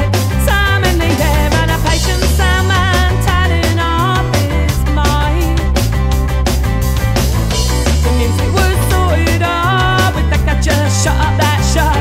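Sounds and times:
bass line: 0.0s - 12.0s
drum beat: 0.0s - 12.0s.

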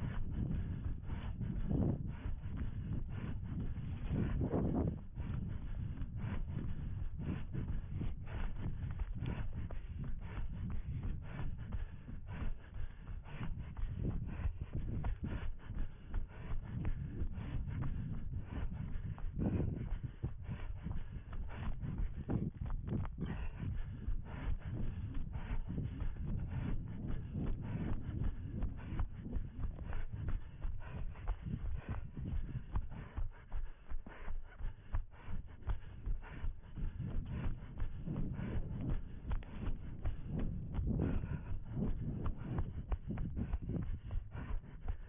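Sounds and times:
low rumble of microphone movement: 0.0s - 45.0s
running footsteps in dry grass: 0.0s - 45.0s.

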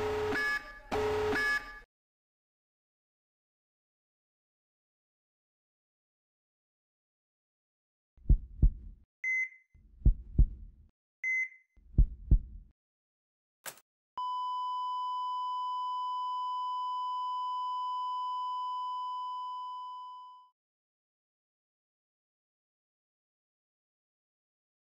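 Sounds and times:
heartbeat sounds: 8.2s - 9.0s, 9.8s - 10.8s, 11.8s - 12.7s.

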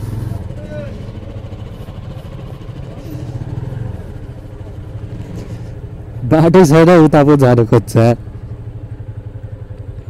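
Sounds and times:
motorcycle engine running: 0.0s - 10.0s.

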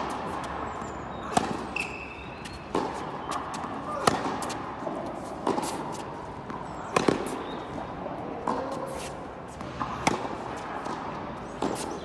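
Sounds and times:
racket striking ball: 0.0s - 12.0s
tennis ball bounce: 0.0s - 12.0s
tennis ball impacts: 0.0s - 12.0s.

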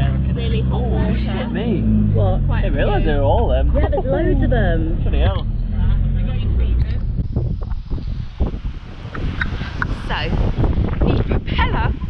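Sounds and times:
strong low rumble: 0.0s - 12.0s
wind noise on microphone: 4.8s - 12.0s.

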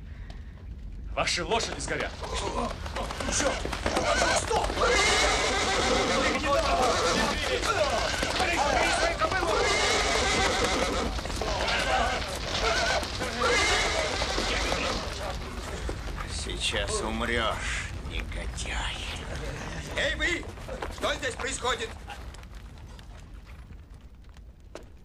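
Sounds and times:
horses neighing: 1.6s - 18.1s, 19.2s - 22.5s.

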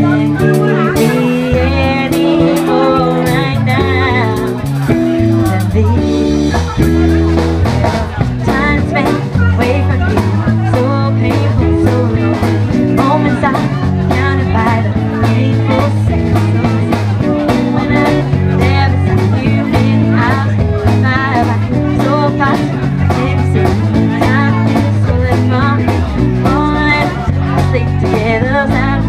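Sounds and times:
bass guitar line: 0.0s - 29.0s
electric guitar lead: 0.0s - 29.0s.

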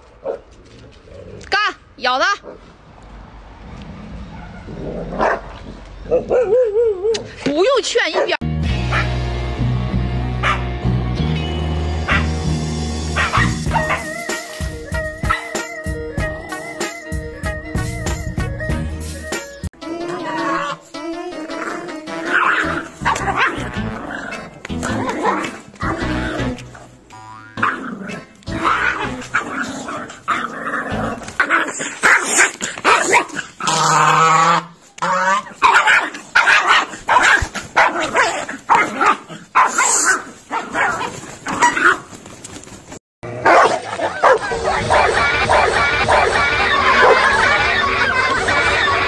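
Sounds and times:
background music: 8.4s - 30.0s
puppy barking and growling: 10.4s - 10.7s, 12.0s - 12.4s, 13.1s - 14.1s, 20.2s - 20.8s, 21.6s - 26.6s, 27.6s - 42.1s, 43.3s - 49.0s.

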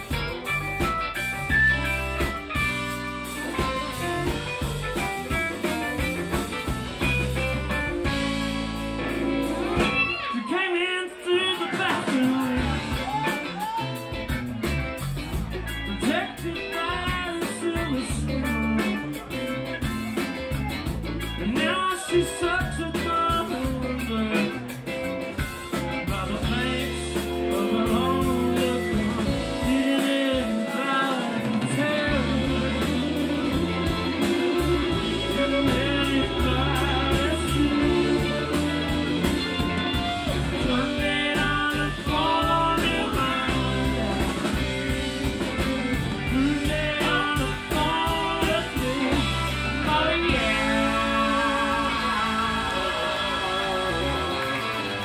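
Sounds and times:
blues-rock band playing: 0.0s - 55.0s
electric guitar lead line: 0.0s - 55.0s.

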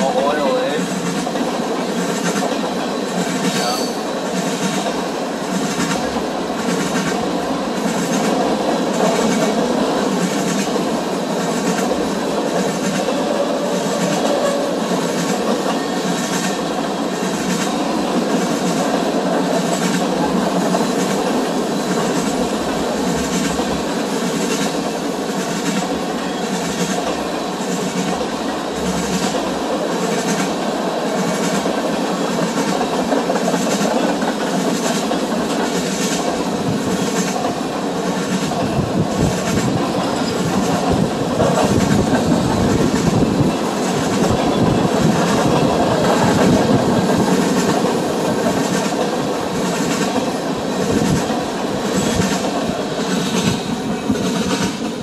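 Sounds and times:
clickety-clack over rail joints: 0.0s - 55.0s
train wheels rumbling on rail: 0.0s - 55.0s.

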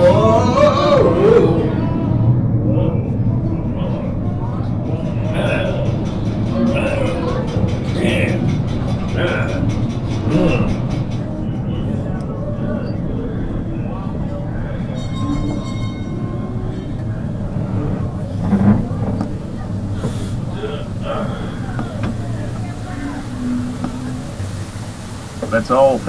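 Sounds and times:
indistinct animatronic voices: 0.0s - 26.0s
mine ride train rumbling on track: 0.0s - 26.0s.

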